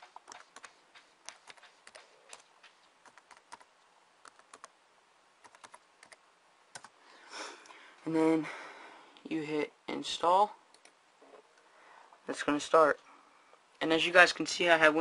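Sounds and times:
computer keyboard keystrokes: 0.0s - 4.7s, 5.4s - 6.9s.

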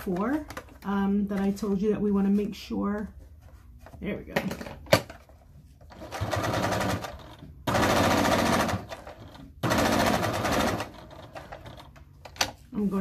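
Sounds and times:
sewing machine stitching: 5.9s - 12.0s.

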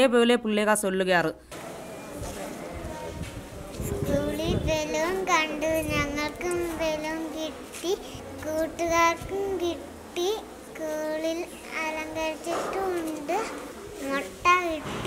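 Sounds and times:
girl singing unaccompanied: 3.9s - 15.0s.

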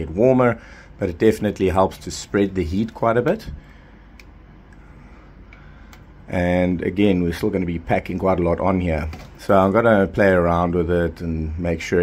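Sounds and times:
low room noise: 0.0s - 12.0s
faint clicks: 5.5s - 6.1s.

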